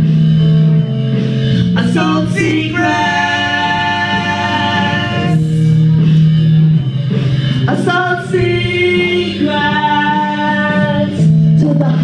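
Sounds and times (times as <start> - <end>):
backing track with bass line: 0.0 - 12.0
voices singing in harmony: 1.8 - 5.7, 7.7 - 11.3.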